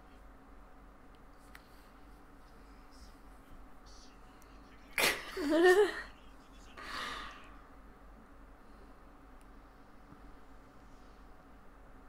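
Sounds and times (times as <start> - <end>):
woman laughing: 5.0 - 6.2.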